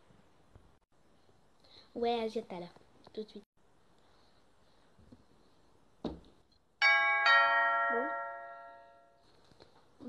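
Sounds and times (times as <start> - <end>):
two-note doorbell chime: 6.8 - 9.2.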